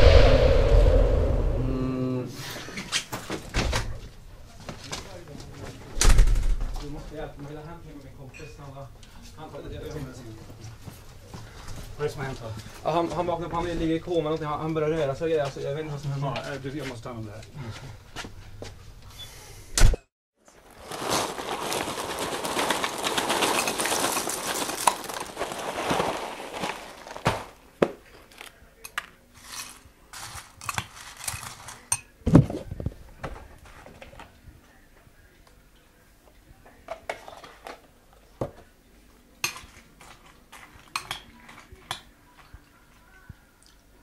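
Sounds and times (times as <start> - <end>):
cereal poured into a bowl: 20.6 - 27.5.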